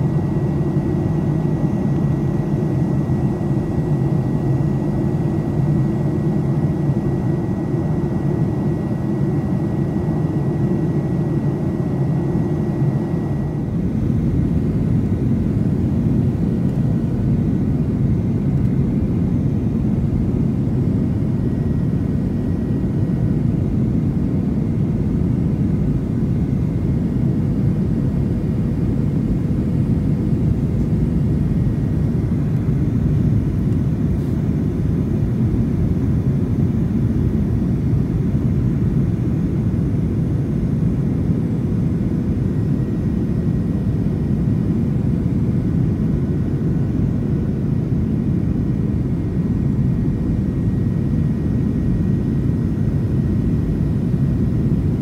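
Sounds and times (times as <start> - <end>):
airplane cabin engine noise: 0.0 - 55.0.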